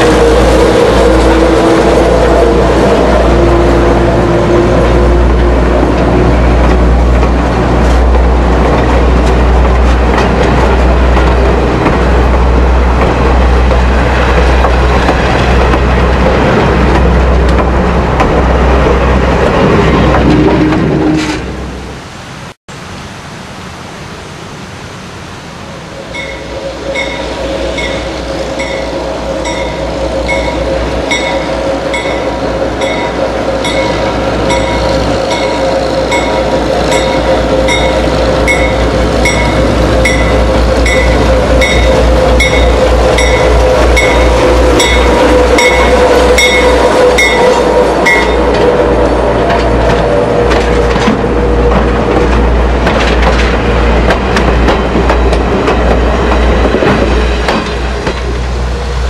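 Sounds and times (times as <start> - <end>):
diesel locomotive engine drone: 0.0 - 59.0.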